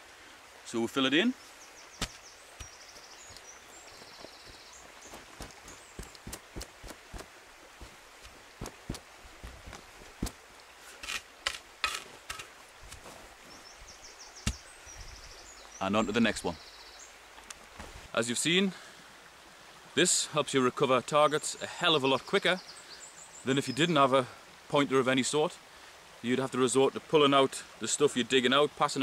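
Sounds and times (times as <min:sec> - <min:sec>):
boots treading soil: 0:02.0 - 0:13.6
spade pushing soil: 0:07.8 - 0:13.2.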